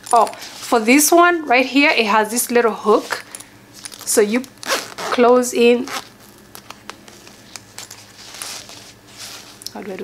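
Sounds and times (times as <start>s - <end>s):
fabric rustle: 7.2s - 10.0s.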